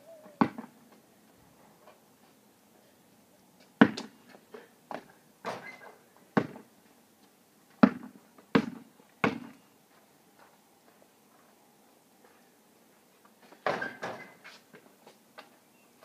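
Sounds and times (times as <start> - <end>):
basketball bouncing on pavement: 0.4 - 0.8, 3.8 - 4.2, 6.3 - 6.7, 7.7 - 9.6
ball striking rim: 3.8 - 4.1, 7.8 - 9.6.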